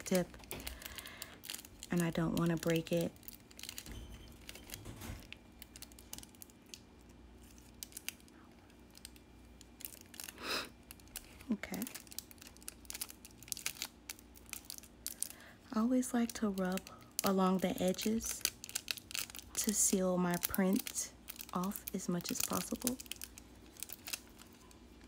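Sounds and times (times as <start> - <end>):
foil crinkling: 0.0 - 25.0
short hum or breath: 10.4 - 10.7.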